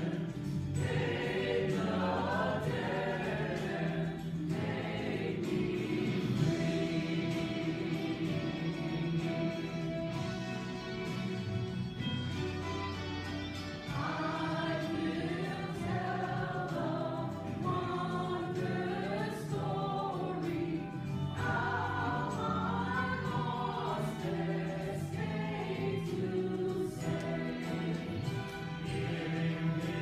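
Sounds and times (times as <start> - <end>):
mixed choir singing: 0.0 - 10.3, 13.8 - 30.0.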